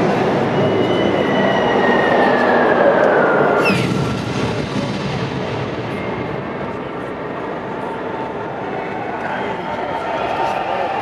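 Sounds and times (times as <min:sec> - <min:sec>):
falling whistle: 0:00.4 - 0:03.9
dense war rumble: 0:03.7 - 0:07.8.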